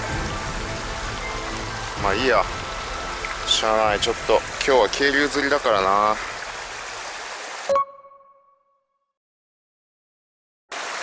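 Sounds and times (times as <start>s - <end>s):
stream water running over rocks: 0.0s - 7.7s, 10.7s - 11.0s.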